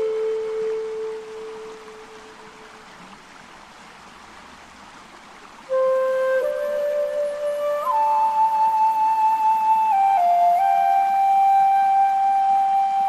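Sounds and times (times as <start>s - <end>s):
flute note: 0.0s - 3.0s, 5.7s - 13.0s
running water: 0.0s - 13.0s.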